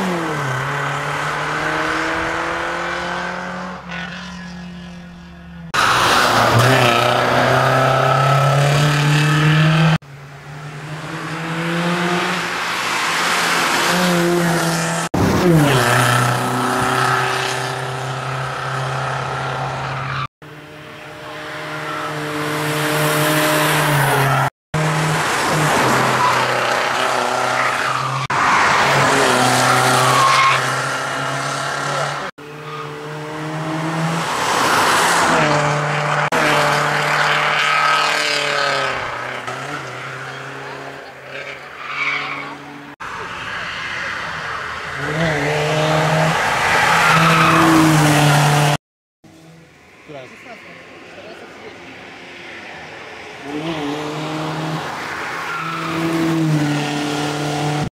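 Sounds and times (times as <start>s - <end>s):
rally car engine revving: 0.0s - 49.6s, 53.4s - 57.9s
tyre squeal: 25.9s - 30.7s, 41.4s - 44.6s.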